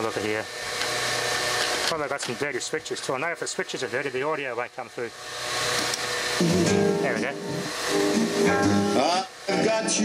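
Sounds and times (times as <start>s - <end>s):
guitar music through speakers: 6.4s - 10.0s.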